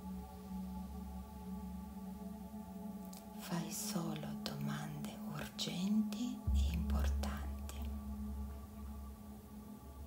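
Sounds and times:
ambient music drone: 0.0s - 10.0s
woman whispering: 3.4s - 8.0s
deep low hum: 6.4s - 10.0s.

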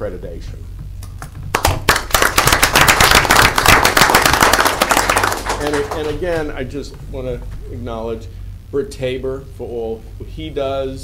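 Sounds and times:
people applauding: 1.2s - 6.5s.

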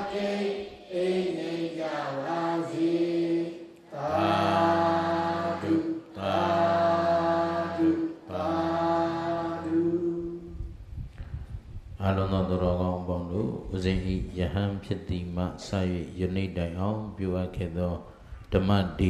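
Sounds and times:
man chanting through microphone: 0.9s - 10.7s, 12.0s - 19.0s
breaths: 11.1s - 11.7s, 18.1s - 18.5s.

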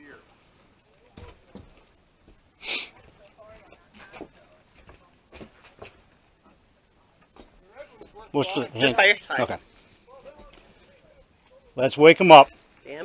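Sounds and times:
faint distant voices: 0.0s - 13.0s.

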